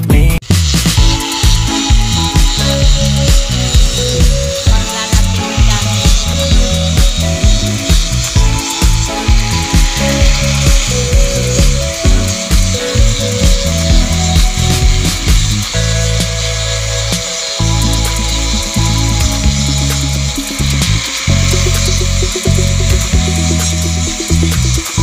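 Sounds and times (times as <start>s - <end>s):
background music: 0.0s - 25.0s
angle grinder grinding coconut shell: 0.5s - 25.0s.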